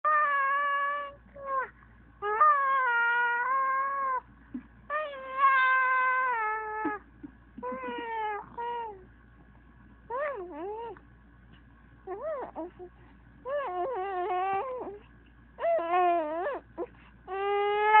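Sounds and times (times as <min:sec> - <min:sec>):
baby crying: 0:07.6 - 0:09.0, 0:12.1 - 0:12.9, 0:13.5 - 0:15.0, 0:15.6 - 0:18.0.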